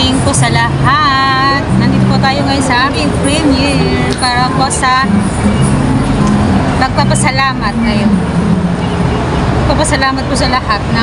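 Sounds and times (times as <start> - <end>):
song with sung gliding melody: 0.0 - 9.5.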